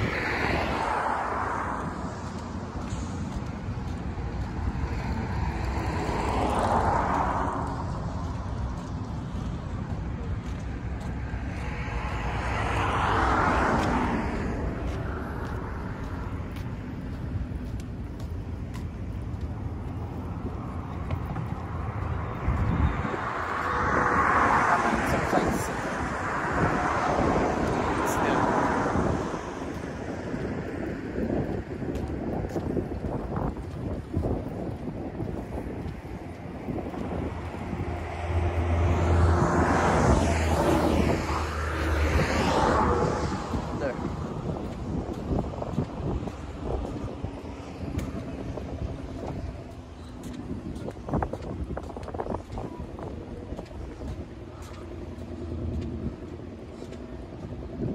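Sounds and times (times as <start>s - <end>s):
vehicles passing on bridge: 0.0s - 57.9s
wind rumble on microphone: 0.0s - 57.9s.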